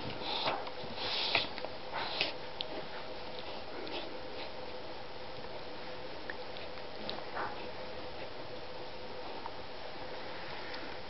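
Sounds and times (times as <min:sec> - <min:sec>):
puppy sniffing and snuffling: 0:00.0 - 0:04.9.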